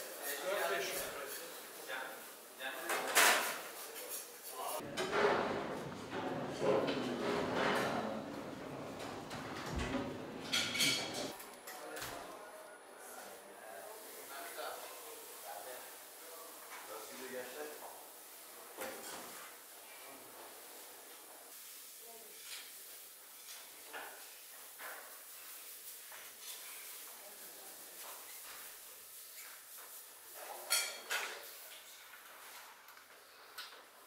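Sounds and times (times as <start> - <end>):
faint room noise: 0.0 - 34.0.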